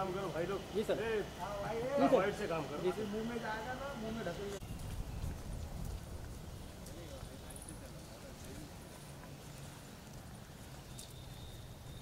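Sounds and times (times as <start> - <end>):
wind rumble: 4.6 - 8.9
running footsteps on wet pavement: 4.6 - 12.0.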